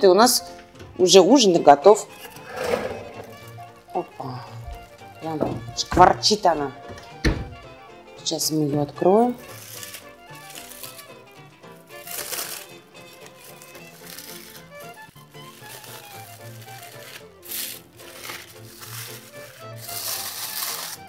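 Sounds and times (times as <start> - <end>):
background music with melody: 0.0 - 21.0
aluminium foil crinkling: 9.4 - 11.2, 12.0 - 21.0.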